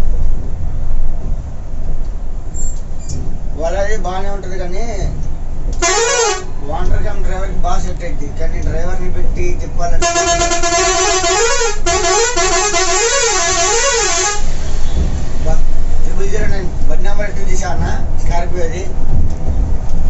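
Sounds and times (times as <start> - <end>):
low rumble of bus and road: 0.0 - 20.0
short horn honk: 5.8 - 6.6, 10.0 - 14.6
vehicle horn warbling: 5.8 - 6.6, 10.0 - 14.6.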